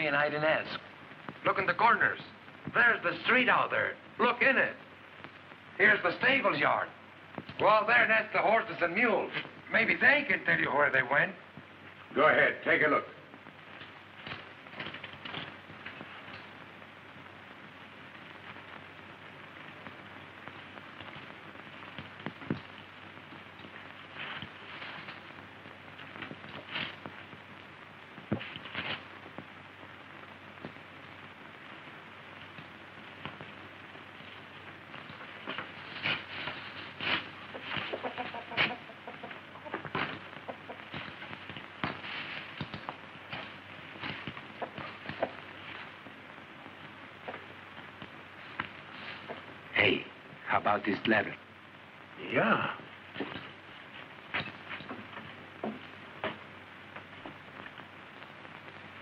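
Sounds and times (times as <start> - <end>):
steady background hiss: 0.0 - 59.0
chickens clucking: 37.5 - 41.1, 44.5 - 45.5.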